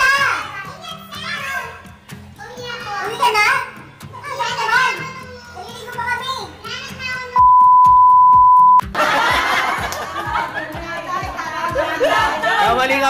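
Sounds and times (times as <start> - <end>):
people talking excitedly: 0.0 - 7.4, 10.6 - 13.0
background music: 0.0 - 8.0, 8.8 - 13.0.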